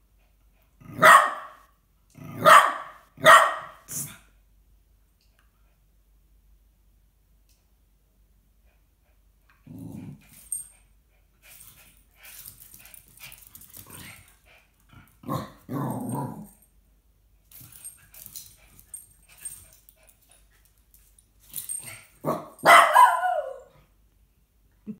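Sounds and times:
dog barking loudly: 0.9 - 1.6, 2.4 - 3.9, 22.2 - 23.7
dogs growling: 9.5 - 10.3, 13.2 - 16.6.

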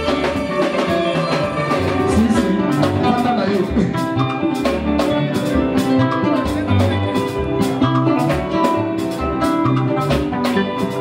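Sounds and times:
bass: 0.0 - 11.0
drum kit beat: 0.0 - 11.0
electric guitar lines: 0.0 - 11.0.

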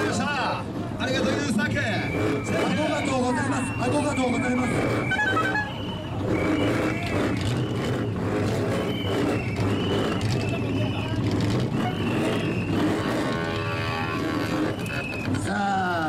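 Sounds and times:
car engine idling: 0.0 - 16.0
crowd voices: 0.0 - 16.0.

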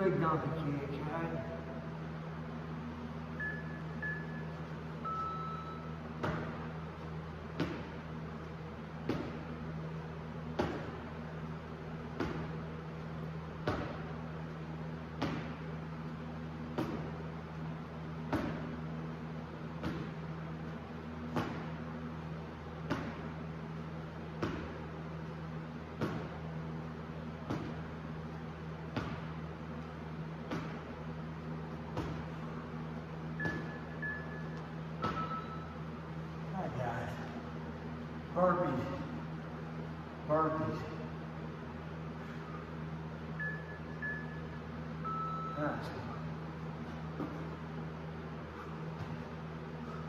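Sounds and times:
steady low hum: 0.0 - 50.0
short beeps: 3.4 - 6.0, 33.4 - 35.8, 43.4 - 46.1
sneakers thudding on artificial turf: 7.5 - 8.0, 28.9 - 29.4, 31.9 - 32.5.

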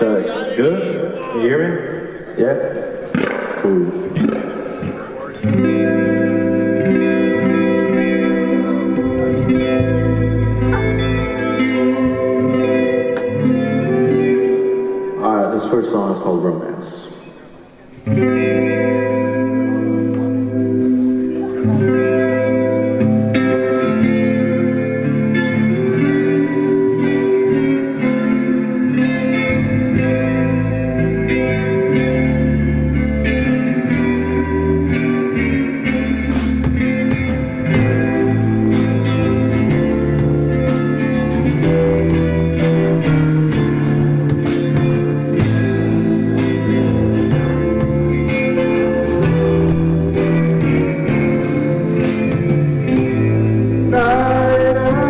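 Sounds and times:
clean electric guitar chords: 0.0 - 55.0
deep bass line: 5.5 - 14.9, 21.6 - 55.0
drums and cymbals: 34.0 - 53.9.

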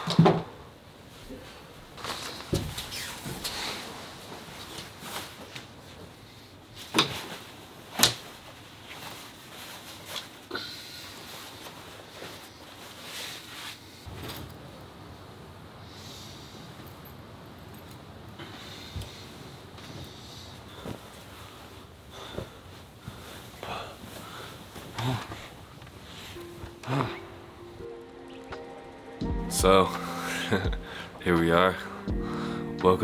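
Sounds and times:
fabric rustling: 1.0 - 15.2, 16.8 - 27.9.

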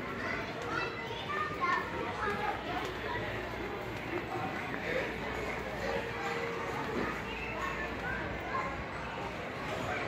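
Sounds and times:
indistinct voices of shoppers: 0.0 - 10.0.

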